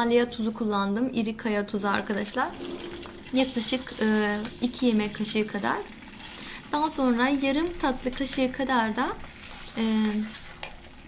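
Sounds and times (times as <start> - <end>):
liquid sizzling in a pot: 1.9 - 11.0
wooden spoon stirring: 2.3 - 11.0.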